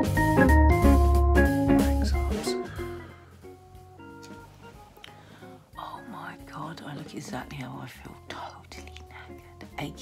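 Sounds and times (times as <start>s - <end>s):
faint background music: 0.0s - 10.0s
woman whispering: 5.8s - 9.5s.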